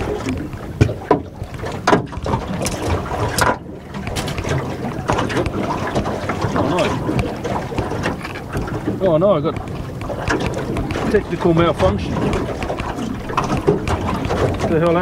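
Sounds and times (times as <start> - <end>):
water against boat hull: 0.0 - 15.0
wind buffeting microphone: 0.0 - 15.0
sharp knocks: 0.2 - 15.0.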